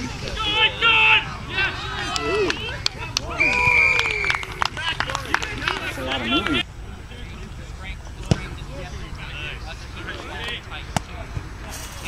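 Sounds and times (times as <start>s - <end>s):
players shouting: 0.0s - 11.7s
sharp claps: 2.1s - 6.6s.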